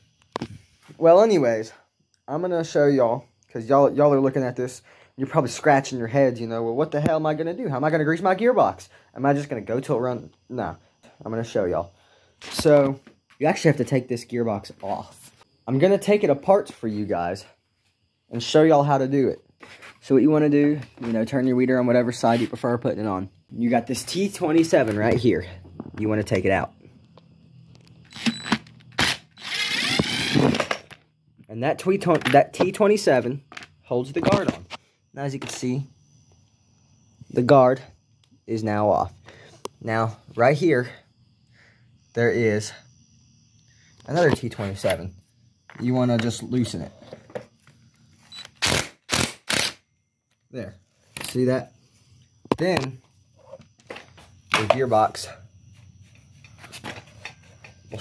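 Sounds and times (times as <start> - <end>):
impact driver whining: 28.1 - 30.9.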